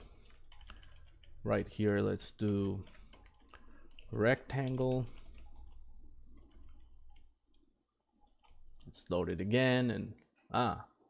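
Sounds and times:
computer keyboard clicks: 0.2 - 7.3
computer mouse clicks: 0.2 - 7.6.

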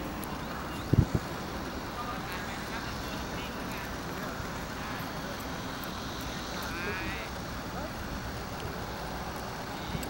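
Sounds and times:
outdoor background hum: 0.0 - 10.0
faint indistinct voices: 0.2 - 10.0.

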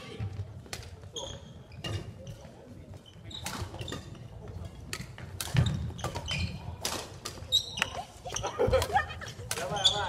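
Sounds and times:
shoe squeaks on gym floor: 0.0 - 8.7, 9.6 - 10.0.

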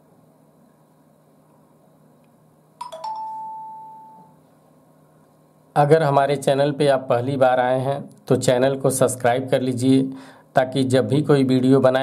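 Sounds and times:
phone startup chime: 2.8 - 4.4.

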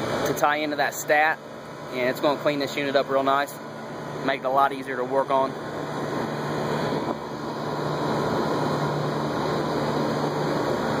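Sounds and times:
rooftop air conditioner humming: 0.0 - 11.0.

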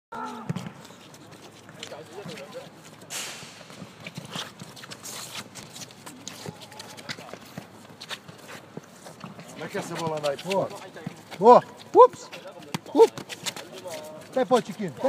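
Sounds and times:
players' voices: 0.2 - 15.0.

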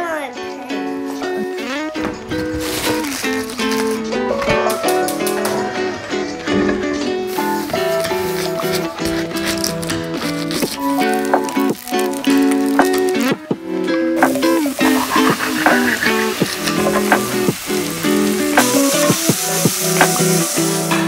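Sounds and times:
background music: 0.0 - 21.0
vegetables sizzling in oil: 2.4 - 4.2, 7.3 - 13.5, 14.2 - 21.0.

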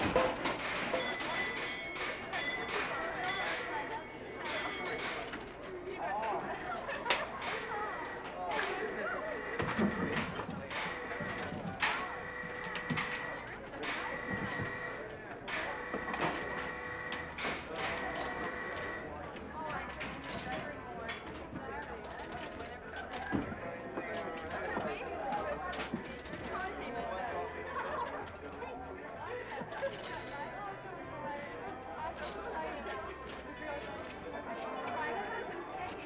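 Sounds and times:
murmured voices: 0.0 - 36.0.

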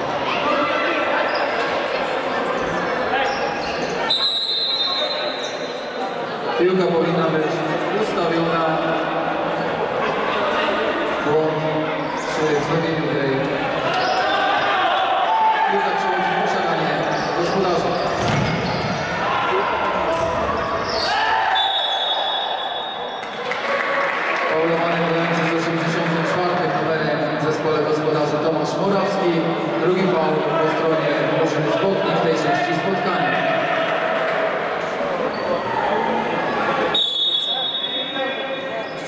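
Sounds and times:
spectators' voices echoing: 0.0 - 39.0
high whistle: 4.0 - 5.7, 20.9 - 23.2, 36.9 - 38.6
ball kicked and bouncing: 18.2 - 18.6.

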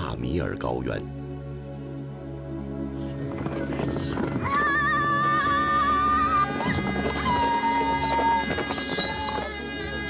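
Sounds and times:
background music: 0.0 - 10.0
horses galloping on dirt: 3.2 - 10.0
horse whinnying: 4.4 - 10.0.

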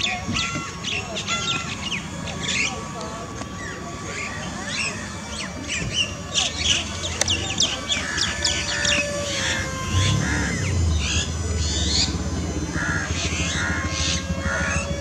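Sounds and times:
birds chirping: 0.0 - 15.0
low steady hum: 0.0 - 15.0.

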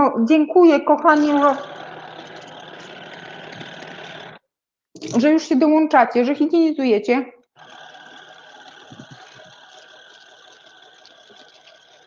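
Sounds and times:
water flosser running: 0.9 - 4.4, 7.6 - 12.0.

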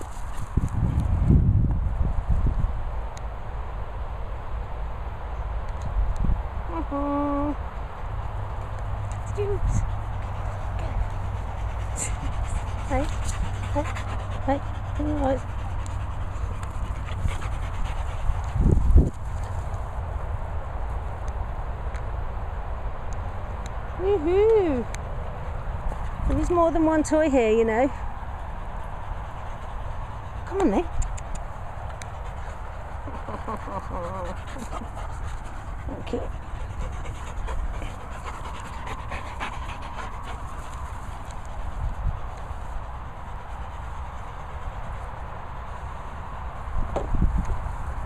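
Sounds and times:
low wind rumble: 0.0 - 48.0
dog panting and sniffing: 8.6 - 20.0, 25.9 - 46.3.

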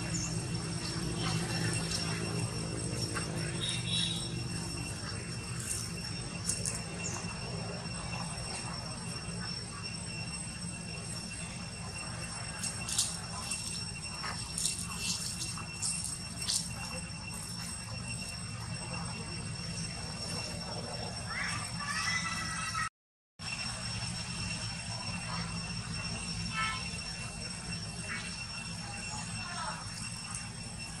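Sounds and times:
footsteps crackling on dry leaves: 0.0 - 8.6, 12.4 - 18.4
steady low hum: 0.0 - 22.8
thin steady high tones: 0.0 - 31.0.

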